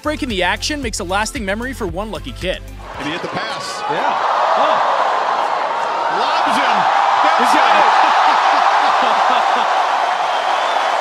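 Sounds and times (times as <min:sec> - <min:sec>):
crowd cheering and applauding: 0:02.8 - 0:11.0
voices shouting: 0:02.8 - 0:11.0.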